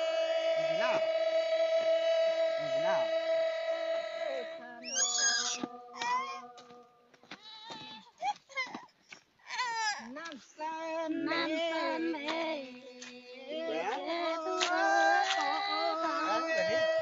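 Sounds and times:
steady held tone: 0:00.0 - 0:06.6
women singing folk song: 0:00.0 - 0:08.1, 0:09.8 - 0:17.0.

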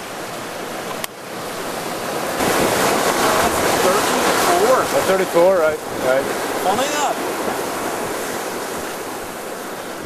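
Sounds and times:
sea rushing past hull: 0:00.0 - 0:10.0
wind: 0:00.0 - 0:10.0.

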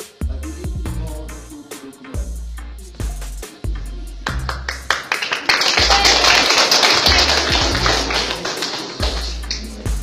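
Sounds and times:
music with deep bass beat: 0:00.0 - 0:05.0, 0:07.1 - 0:10.0
hands clapping: 0:04.2 - 0:10.0.

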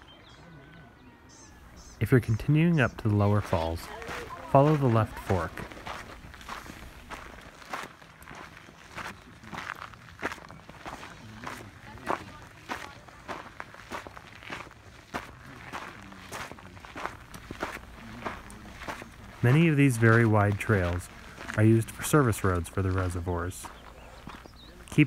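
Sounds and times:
faint voices of hikers: 0:00.0 - 0:25.0
footsteps on rocky dirt trail: 0:01.6 - 0:25.0.

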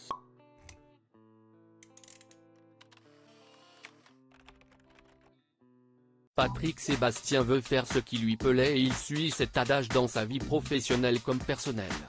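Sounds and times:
small clicks: 0:01.8 - 0:05.3.

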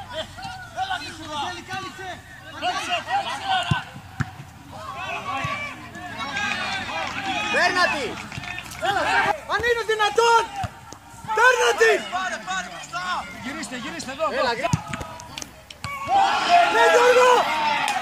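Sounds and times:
men shouting: 0:11.3 - 0:14.6, 0:16.0 - 0:18.0.

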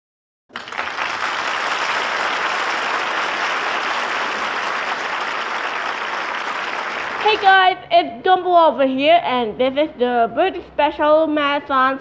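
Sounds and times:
audience applause: 0:00.5 - 0:07.5.

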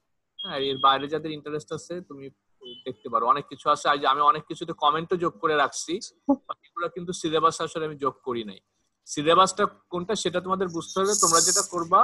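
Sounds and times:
man lecturing: 0:00.5 - 0:12.0.

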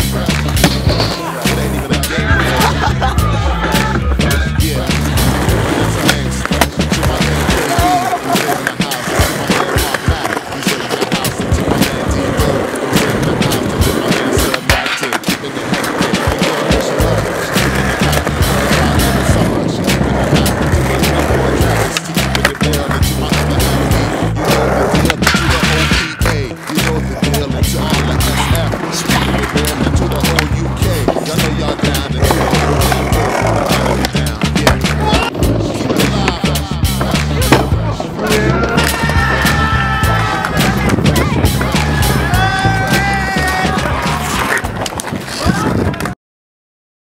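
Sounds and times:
skateboard clacks: 0:00.0 - 0:02.9, 0:03.6 - 0:46.2
music with heavy bass beat: 0:00.0 - 0:44.5
skateboard wheels rolling on concrete: 0:00.0 - 0:46.2.

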